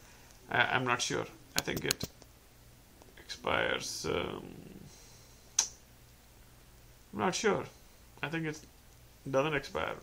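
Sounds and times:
faint low hum: 0.0 - 10.0
sharp click: 5.6 - 5.8.

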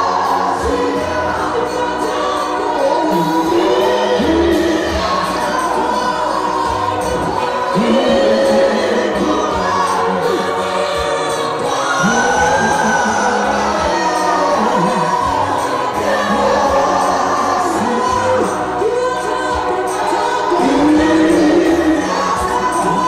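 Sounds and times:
congregation singing gospel song: 0.0 - 23.0.

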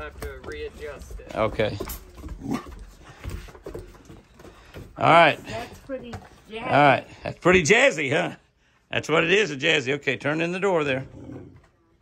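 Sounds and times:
footsteps on wooden deck: 0.0 - 6.9.

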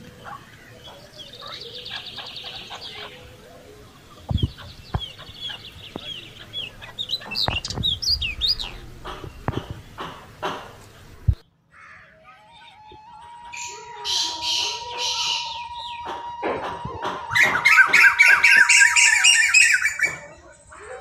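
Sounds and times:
repeated chuk bird calls: 0.0 - 21.0
harsh rasping bird squawks: 13.4 - 20.3.

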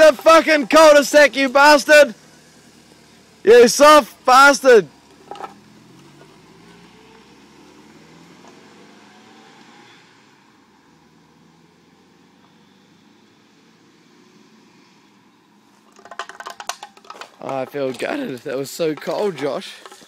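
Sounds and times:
car driving away: 0.0 - 20.0.

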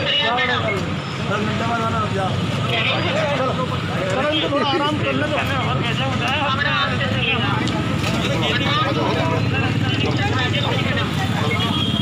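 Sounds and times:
low hum of street traffic: 0.0 - 12.0
people talking: 0.0 - 12.0.

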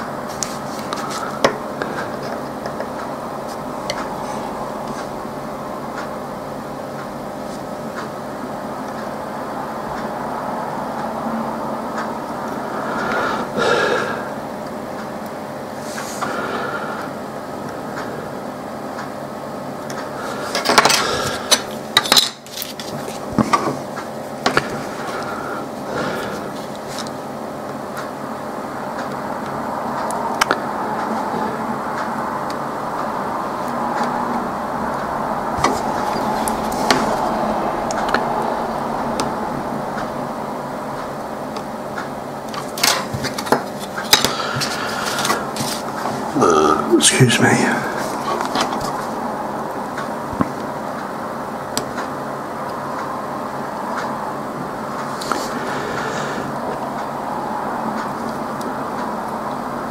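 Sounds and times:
steady background noise: 0.0 - 59.9.

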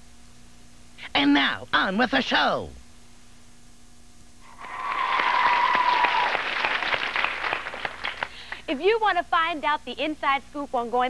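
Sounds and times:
high held cheer: 4.4 - 8.5
audience clapping: 4.5 - 8.7.

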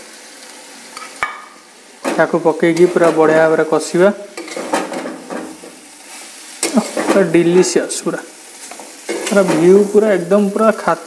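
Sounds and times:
soft sizzle of frying: 0.0 - 11.0.

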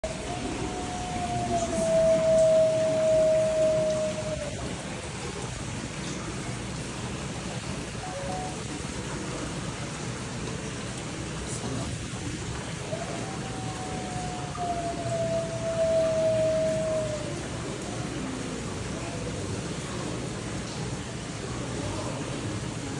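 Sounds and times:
wolf howling: 0.0 - 4.9, 12.8 - 19.5.

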